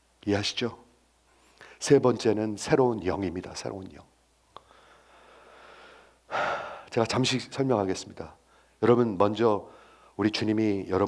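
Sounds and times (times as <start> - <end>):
loud intake of breath: 4.6 - 6.9, 9.7 - 10.2
man breathing faintly: 4.6 - 6.9, 9.7 - 10.2.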